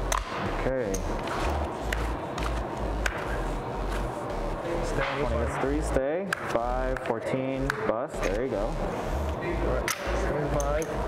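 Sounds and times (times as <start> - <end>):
room noise with low hum: 0.0 - 11.0
playing cards dealt on felt: 1.0 - 4.2.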